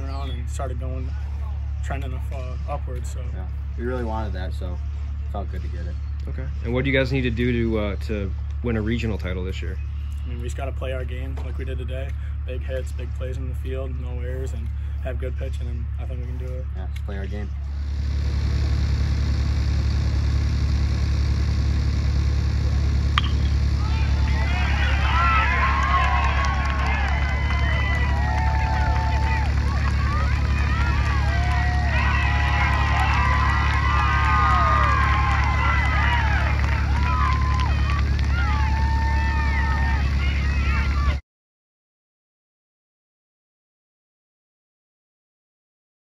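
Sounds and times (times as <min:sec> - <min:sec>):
steady low rumble: 0:00.0 - 0:41.2
distant voices calling out: 0:23.0 - 0:41.2
metal bat hitting ball: 0:23.2 - 0:23.7
spectators cheering and shouting: 0:23.2 - 0:41.2.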